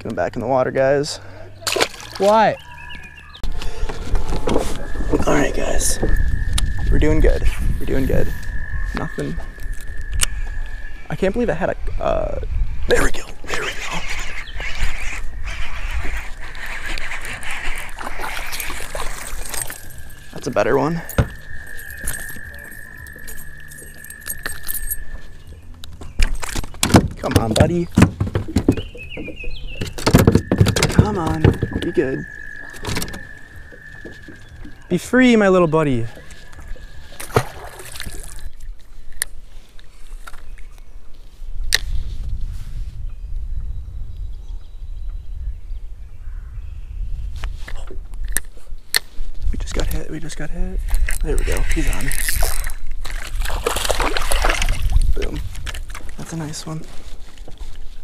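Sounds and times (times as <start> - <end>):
fish splashing into water: 1.6 - 2.4, 17.8 - 20.2, 36.5 - 38.6, 52.4 - 55.1
low rumble: 2.6 - 12.9
metal fishing lure jangling: 21.0 - 25.4
fishing rod clicks and knocks: 21.1 - 31.9, 50.9 - 56.2
knocks against a kayak: 26.8 - 32.0.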